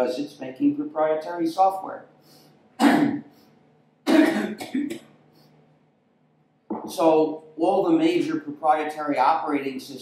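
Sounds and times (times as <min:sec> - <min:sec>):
man clearing his throat: 0:02.8 - 0:03.3, 0:04.0 - 0:05.1.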